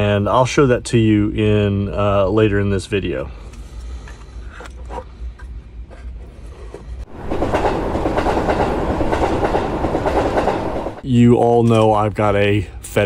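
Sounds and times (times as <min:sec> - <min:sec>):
train clattering on rails: 0:07.1 - 0:11.0.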